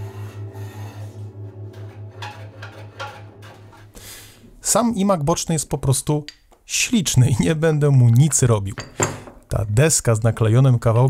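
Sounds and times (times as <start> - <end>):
hand tool scraping wood: 0.0 - 4.5
low pulsing hum: 0.0 - 4.6.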